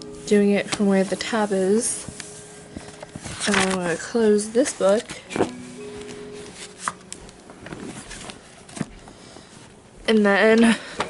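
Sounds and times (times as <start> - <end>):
paper rustling: 0.3 - 9.6.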